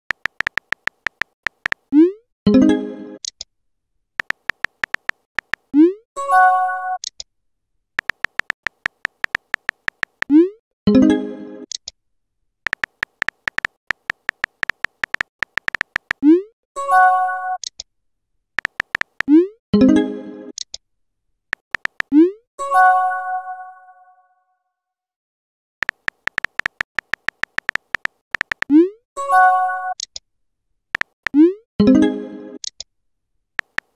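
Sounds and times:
keyboard typing clicks: 0.1 - 2.1, 4.2 - 5.9, 8.0 - 10.4, 12.7 - 16.4, 18.6 - 19.4, 21.5 - 22.3, 25.8 - 28.9, 31.0 - 31.5, 32.6 - 32.9, 33.6 - 33.9.

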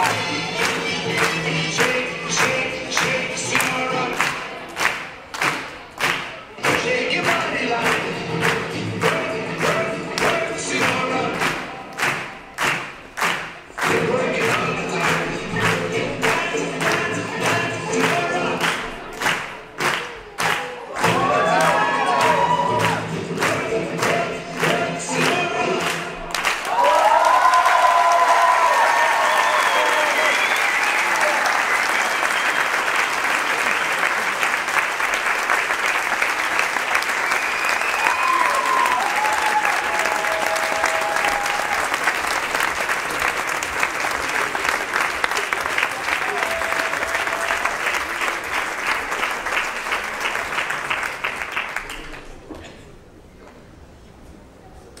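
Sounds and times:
audience applause: 0.0 - 52.3
dance music with strong beat: 13.9 - 18.9
audience cheering: 20.1 - 23.1, 26.4 - 49.0.

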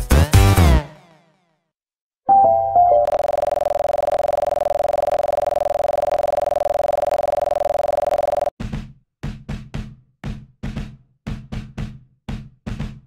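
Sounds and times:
buzzing electronic tone: 3.1 - 8.5.

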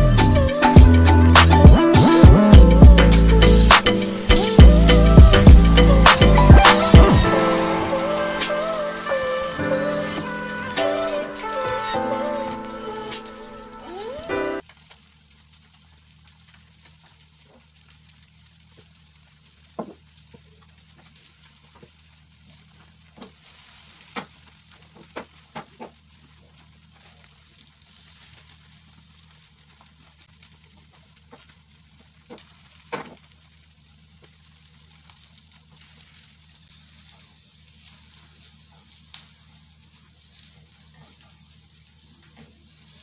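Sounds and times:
food sizzling in a pan: 0.0 - 43.0.

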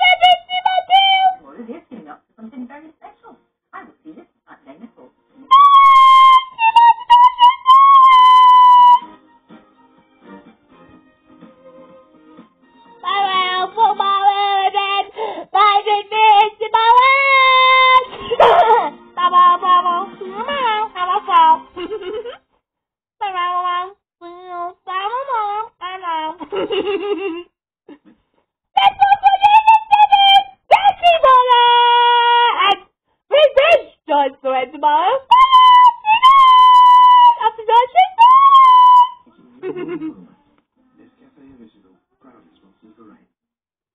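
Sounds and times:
child squealing: 18.4 - 18.9, 35.3 - 37.4.

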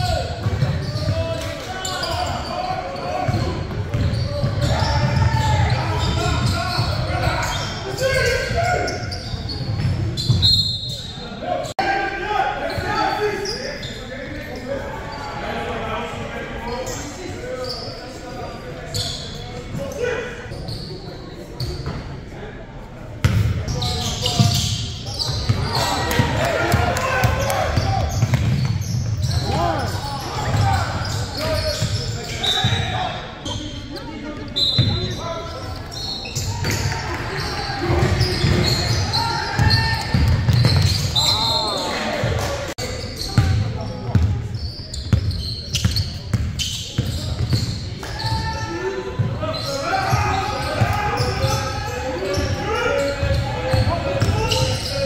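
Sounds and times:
echoing voices: 0.0 - 55.0.

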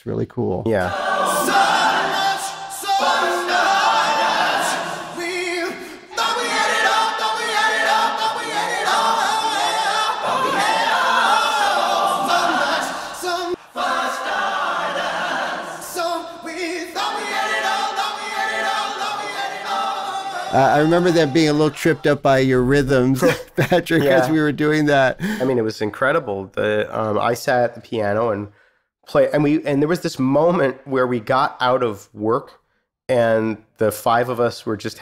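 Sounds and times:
choir singing in harmony: 0.8 - 22.1
man ad-libbing vocals: 20.5 - 25.7.

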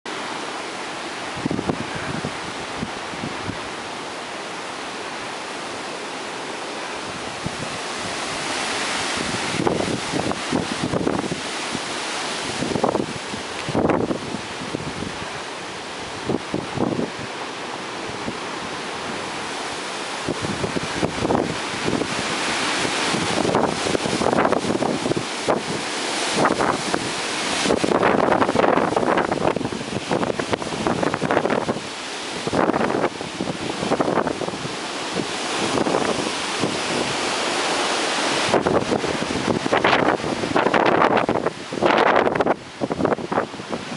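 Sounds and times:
rain: 0.1 - 43.9
wind gusting through trees: 0.1 - 43.9
wind buffeting microphone: 1.0 - 43.9.

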